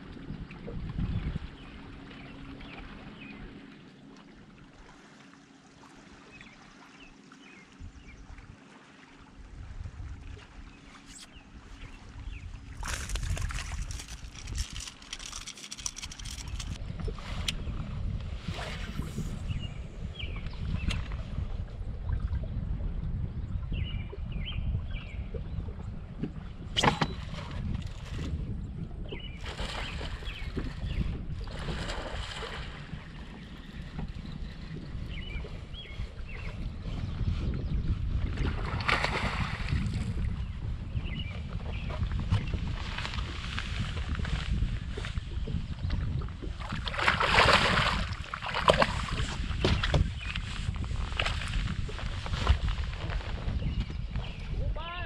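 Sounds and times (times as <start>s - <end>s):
wind rumbling on microphone: 0.0s - 3.7s, 6.4s - 8.6s, 9.2s - 55.0s
fish splashing out of water: 38.6s - 39.8s, 46.7s - 49.2s
water slapping against boat hull: 45.9s - 53.1s
sharp splashes: 46.8s - 49.2s.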